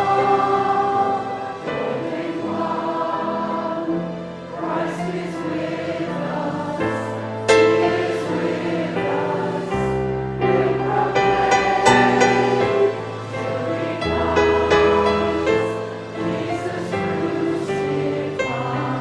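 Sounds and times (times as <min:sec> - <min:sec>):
group singing a hymn: 0:00.0 - 0:19.0.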